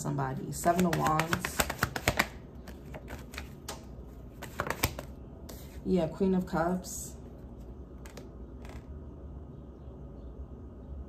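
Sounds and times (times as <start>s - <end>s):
cards being shuffled: 0.6s - 5.8s, 8.0s - 8.9s.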